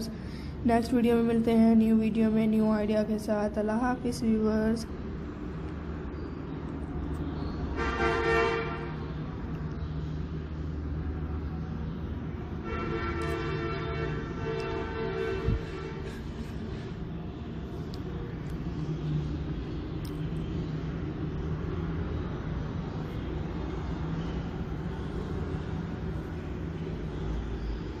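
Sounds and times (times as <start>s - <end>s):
horn-like tone: 7.8s - 9.0s, 12.6s - 16.3s
steady low rumble: 14.2s - 28.0s.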